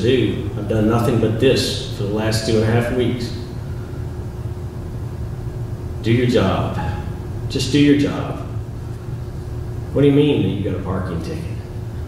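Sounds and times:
faint constant hum: 0:00.0 - 0:12.0
steady low rumble: 0:00.0 - 0:12.0.

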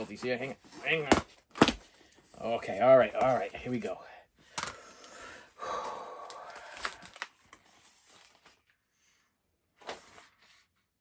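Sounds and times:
paper packaging rustling: 0:06.4 - 0:08.8.

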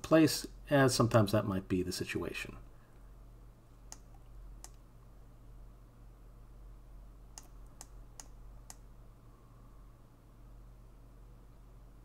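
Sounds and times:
low electrical hum: 0:00.0 - 0:12.0
computer mouse clicks: 0:03.9 - 0:04.8, 0:07.3 - 0:08.9.

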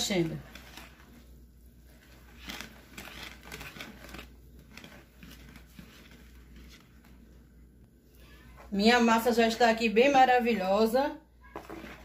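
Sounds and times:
whisk stirring batter: 0:00.0 - 0:07.4.

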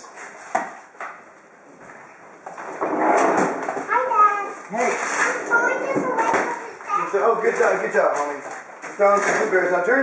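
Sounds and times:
loud rough noise: 0:04.7 - 0:07.4.

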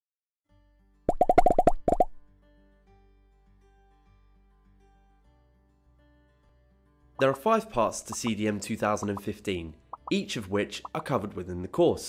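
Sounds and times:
pitched plopping pops: 0:01.1 - 0:02.2, 0:07.2 - 0:07.4, 0:08.1 - 0:08.3, 0:09.0 - 0:09.3, 0:10.0 - 0:10.2
faint background music: 0:02.2 - 0:12.0.

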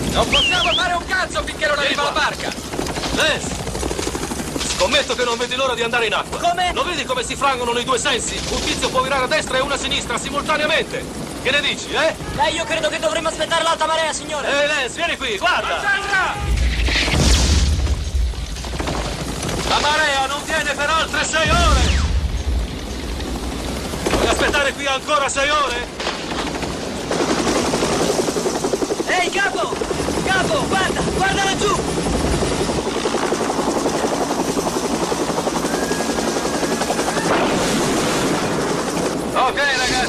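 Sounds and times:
helicopter rotor blades chopping: 0:00.0 - 0:40.0
mortar explosion boom: 0:16.5 - 0:19.1, 0:21.4 - 0:22.7.

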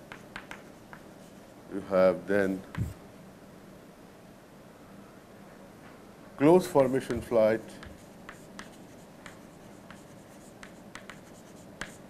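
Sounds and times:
chalk tapping and scraping: 0:00.0 - 0:01.6, 0:06.6 - 0:12.0.

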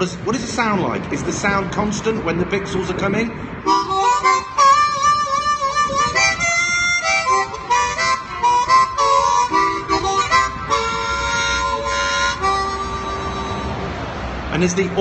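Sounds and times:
harmonica playing: 0:03.6 - 0:14.1.

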